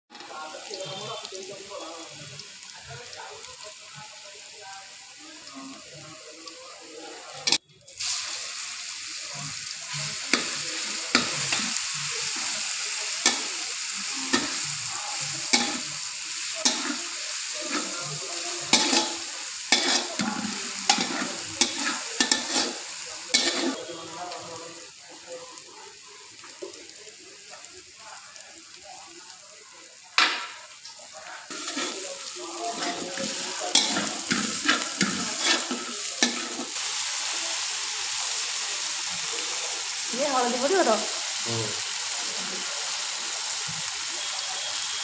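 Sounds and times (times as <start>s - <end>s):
onion sizzling in hot oil: 0.1s - 45.0s
spatula scraping a pan: 16.6s - 24.0s, 31.5s - 36.8s.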